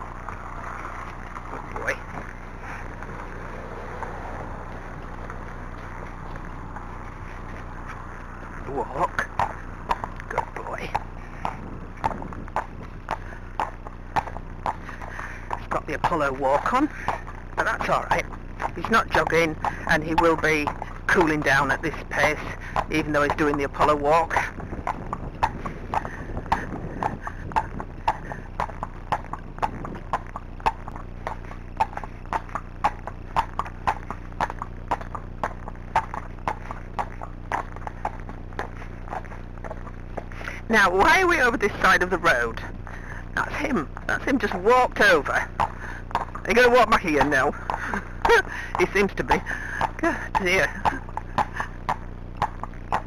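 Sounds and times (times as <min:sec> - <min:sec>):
horse hooves on tarmac: 0:00.0 - 0:53.0.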